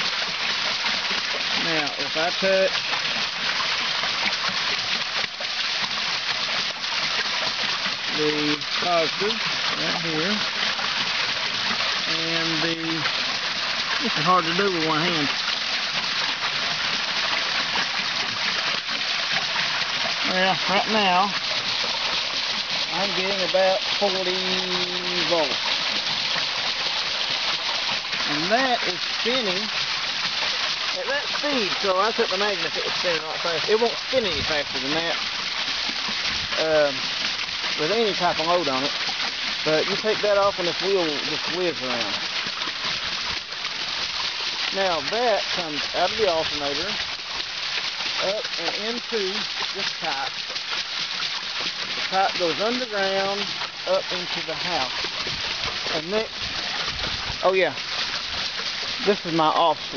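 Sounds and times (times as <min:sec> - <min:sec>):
creek water rushing at water wheel: 0:00.0 - 0:59.9.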